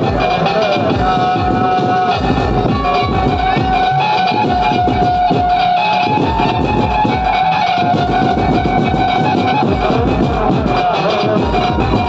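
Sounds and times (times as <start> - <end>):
amplified banjo party music: 0.0 - 12.0.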